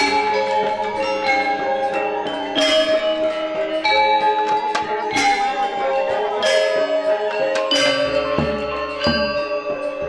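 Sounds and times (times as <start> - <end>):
gamelan metallophones ringing: 0.0 - 10.0.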